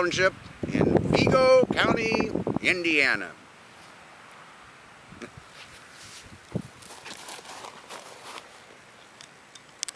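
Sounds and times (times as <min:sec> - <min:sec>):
footsteps on dry grass: 0:05.5 - 0:08.8.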